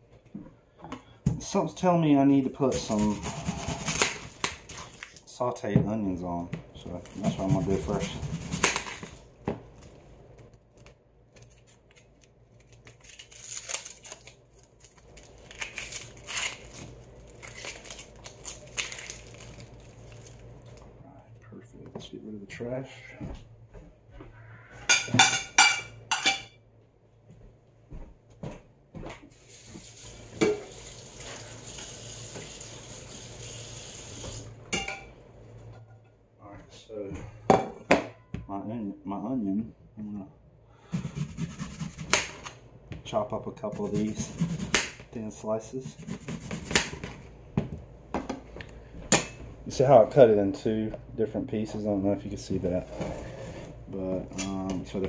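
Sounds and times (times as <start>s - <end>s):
onion skin peeled and crinkling: 2.7s - 5.3s, 6.8s - 20.9s
dishes and utensils clinking: 24.8s - 26.6s
water running from a tap: 29.5s - 34.5s.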